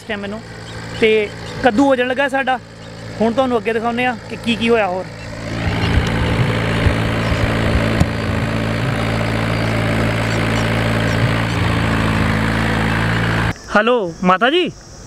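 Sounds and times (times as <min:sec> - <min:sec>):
tractor diesel engine running: 0:00.0 - 0:13.6.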